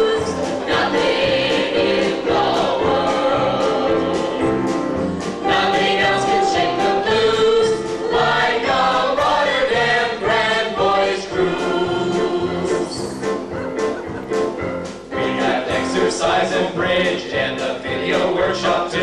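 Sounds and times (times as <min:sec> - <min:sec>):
group singing with accompaniment: 0:00.0 - 0:14.1, 0:14.9 - 0:19.0.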